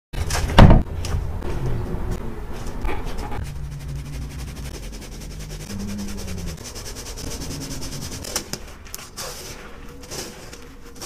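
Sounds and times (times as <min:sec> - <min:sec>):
sieve shaking: 0:03.4 - 0:11.0.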